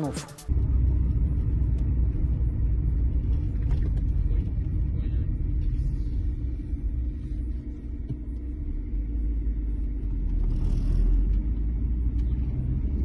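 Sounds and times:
car cabin rumble: 0.5s - 13.0s.

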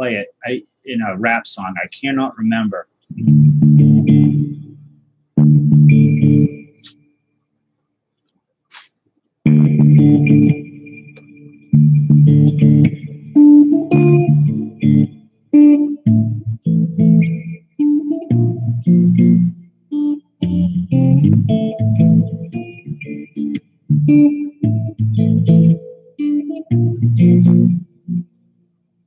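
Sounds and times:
electric guitar stop-start riff: 2.5s - 6.9s, 9.5s - 28.3s.

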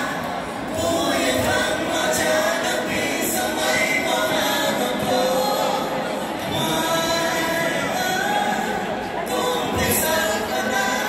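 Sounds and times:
crowd singing a song: 0.0s - 11.0s
music: 0.0s - 11.0s.

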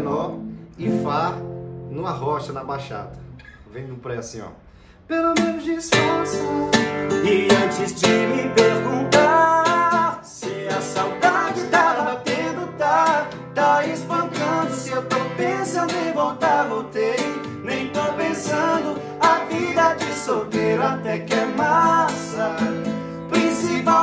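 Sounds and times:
acoustic guitar strumming: 0.0s - 2.5s, 5.3s - 24.0s
men singing: 5.2s - 24.0s.

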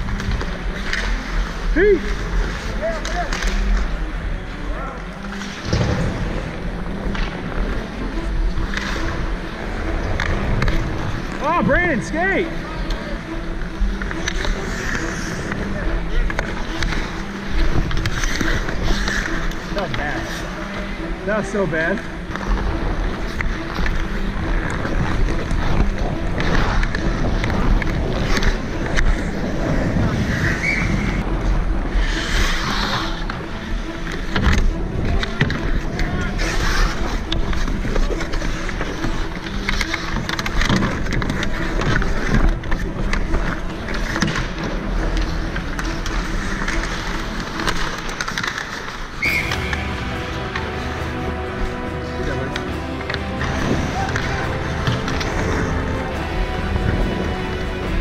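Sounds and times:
hockey sticks and puck clacks: 0.0s - 58.0s
skate blades scraping ice: 0.0s - 58.0s.

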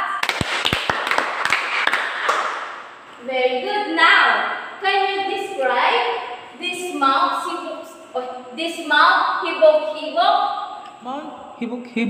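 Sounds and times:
people clapping: 0.0s - 2.9s.

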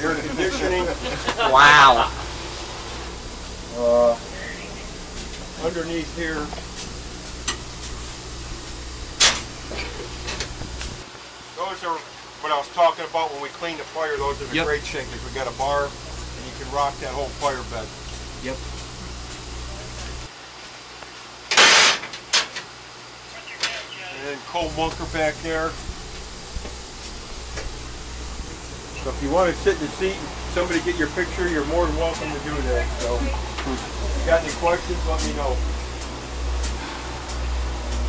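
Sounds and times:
low hum and hiss: 0.0s - 38.0s.

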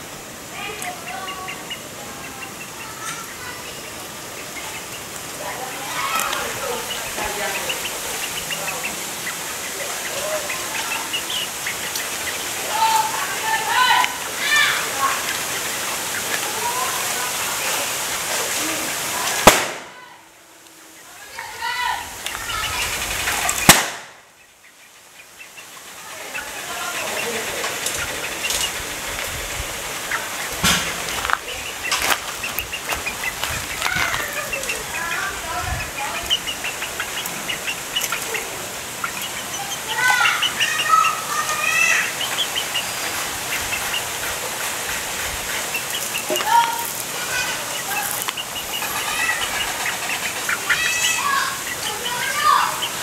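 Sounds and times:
chickens chirping: 0.0s - 53.0s
sharp knock: 19.4s - 19.9s, 30.6s - 31.0s.

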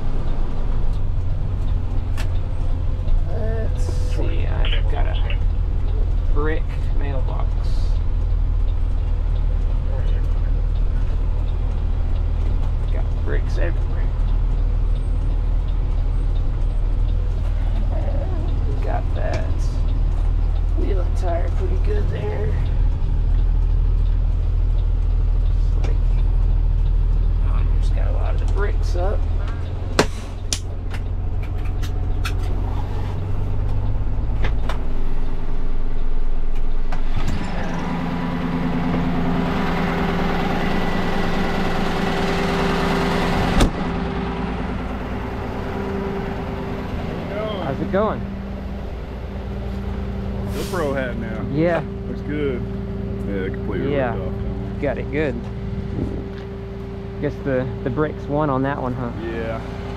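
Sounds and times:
diesel truck engine running: 0.0s - 59.9s.

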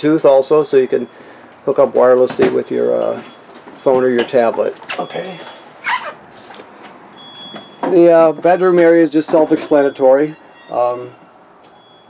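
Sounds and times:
man speaking: 0.0s - 1.1s, 1.7s - 5.6s, 7.8s - 11.2s.

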